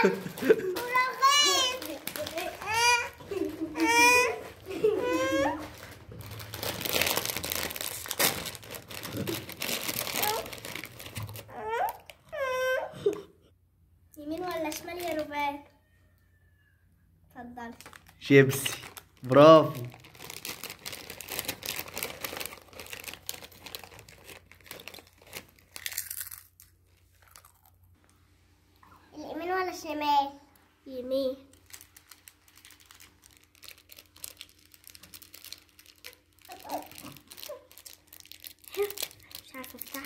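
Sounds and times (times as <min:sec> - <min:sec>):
foil chip bag crinkling: 0:00.0 - 0:12.2, 0:17.7 - 0:27.9, 0:31.5 - 0:40.0.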